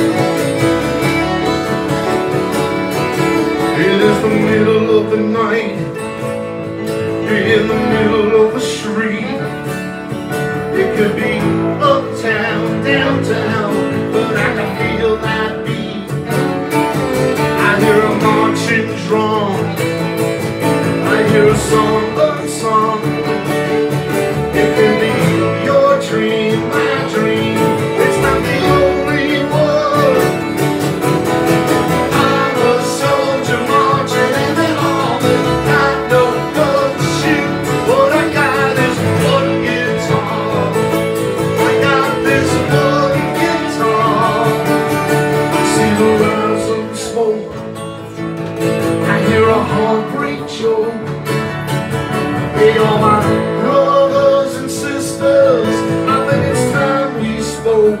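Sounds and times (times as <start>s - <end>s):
acoustic guitars strummed: 0.0s - 58.0s
fiddle: 0.0s - 58.0s
keyboard: 0.0s - 58.0s
man singing: 2.9s - 48.0s, 48.8s - 51.5s, 52.4s - 58.0s.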